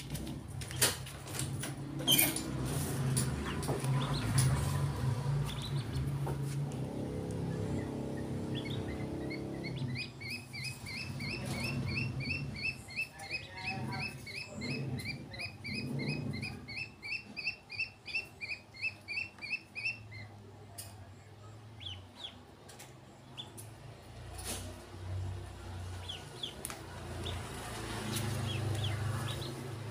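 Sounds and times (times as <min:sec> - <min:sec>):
ducklings peeping: 0:03.3 - 0:20.4, 0:21.4 - 0:22.5, 0:23.2 - 0:23.8, 0:25.4 - 0:29.9.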